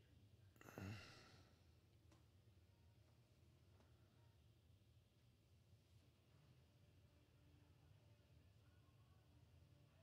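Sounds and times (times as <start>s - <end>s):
man sighing: 0.6s - 1.3s.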